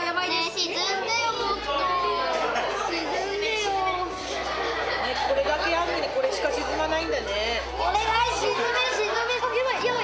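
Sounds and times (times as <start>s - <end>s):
children talking and chattering: 0.0s - 10.0s.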